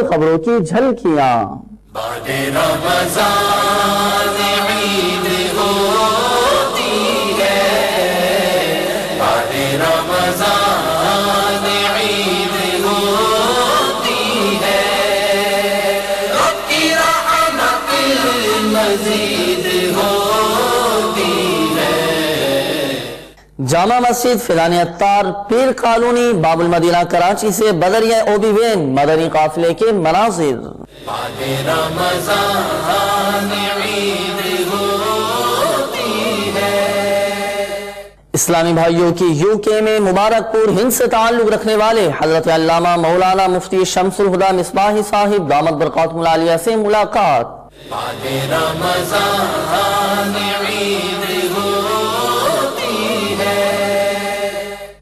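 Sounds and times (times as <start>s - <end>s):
voices chanting a cappella: 1.9s - 23.5s, 30.8s - 38.4s, 47.3s - 55.0s
man chanting melodically: 38.3s - 49.1s.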